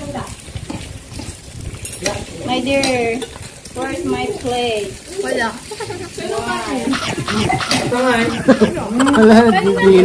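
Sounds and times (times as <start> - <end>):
food sizzling in a pan: 0.0 - 10.0
utensil scraping a pan: 6.6 - 8.8.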